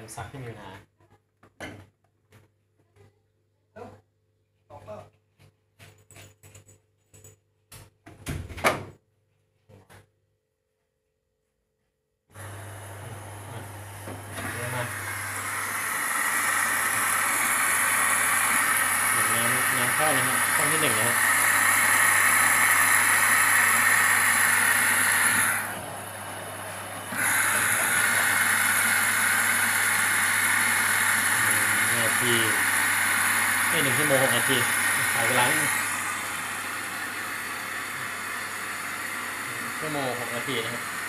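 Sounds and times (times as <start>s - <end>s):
water rushing into washing machine: 12.4s - 41.0s.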